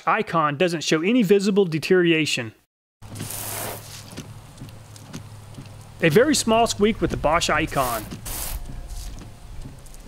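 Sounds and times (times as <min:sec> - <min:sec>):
short hiss: 0:07.8 - 0:08.6.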